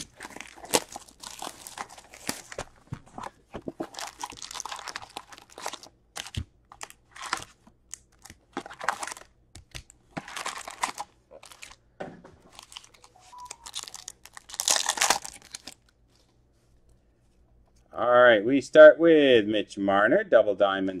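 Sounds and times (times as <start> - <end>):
foil packs crinkling: 0.0 - 11.8, 12.5 - 16.0
wrapper tearing: 0.0 - 11.8, 12.5 - 16.0.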